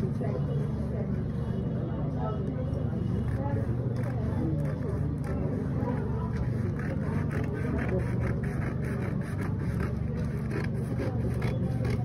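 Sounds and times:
scissors snipping paper: 3.9 - 12.0.

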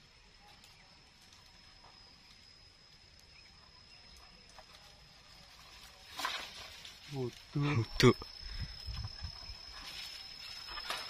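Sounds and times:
small ticks: 0.4 - 5.0
pole rustling palm fronds: 4.5 - 11.0.

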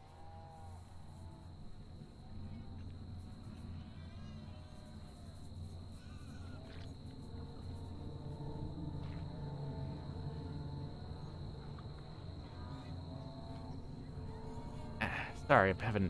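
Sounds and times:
faint insect chirping: 0.0 - 16.0
steady low hum: 0.0 - 16.0
thin constant high tone: 0.0 - 16.0.

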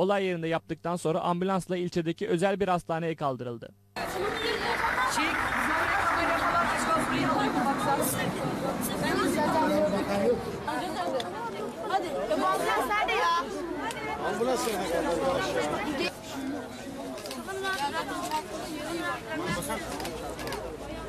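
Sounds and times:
people chattering: 4.0 - 21.0.

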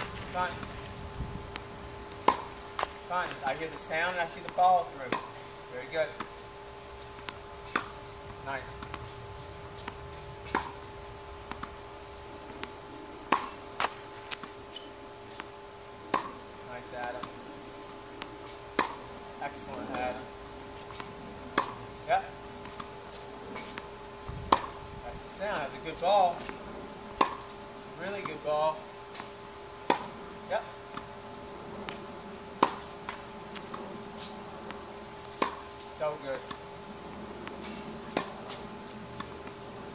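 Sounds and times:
tennis ball struck by racket: 1.5 - 5.4, 7.2 - 9.1, 9.8 - 11.8, 12.5 - 17.4, 18.2 - 20.3, 20.9 - 21.9, 24.5 - 24.8, 25.5 - 30.2, 32.6 - 36.6, 37.4 - 39.5.

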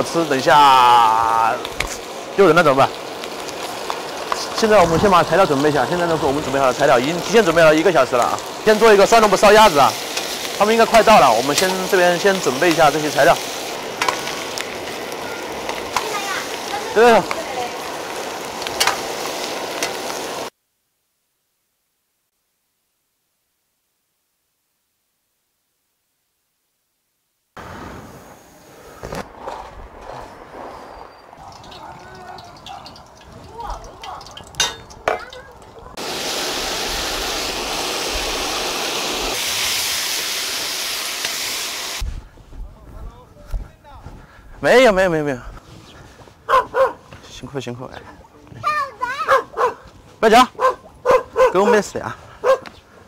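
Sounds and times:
meat sizzling in a wok: 0.0 - 20.5, 31.0 - 42.1
metal ladle knocking pan: 31.5 - 35.8.

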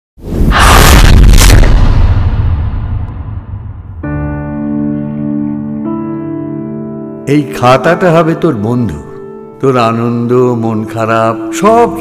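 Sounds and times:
rushing whoosh: 0.2 - 3.9
deep rumbling boom: 0.3 - 4.2.

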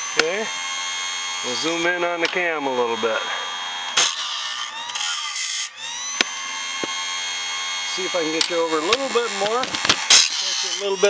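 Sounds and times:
grinding wheel motor whine: 0.0 - 11.0
wheel grinding rasp: 0.0 - 11.0
sharp clicks: 8.3 - 10.4.

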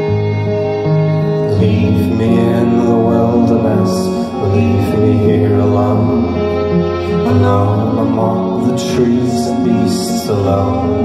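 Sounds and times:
acoustic guitars playing folk music: 0.0 - 11.0.

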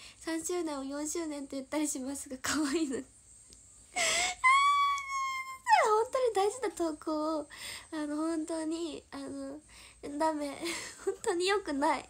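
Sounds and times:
woman speaking: 0.3 - 3.1, 5.0 - 12.0
woman wailing: 4.0 - 6.0.

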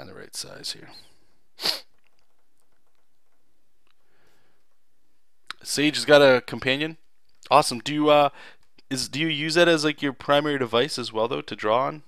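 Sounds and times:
sharp burst of breath: 1.6 - 2.0.

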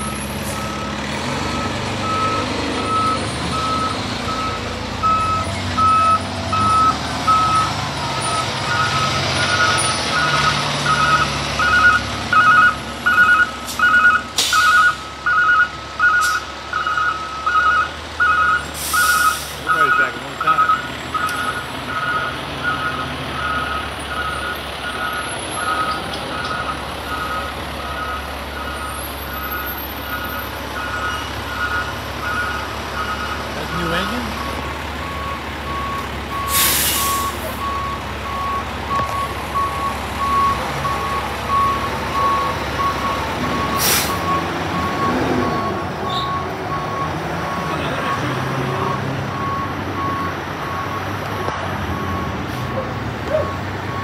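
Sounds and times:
idling diesel engines rumble: 0.0 - 54.0
truck backup alarm beeping: 0.0 - 54.0
air brake hisses: 36.5 - 37.6, 43.8 - 44.2.

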